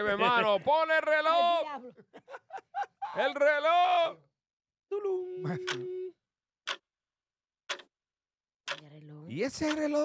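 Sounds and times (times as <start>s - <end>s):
clock ticking: 5.6s - 6.0s, 6.6s - 6.9s, 7.6s - 8.0s, 8.6s - 10.0s.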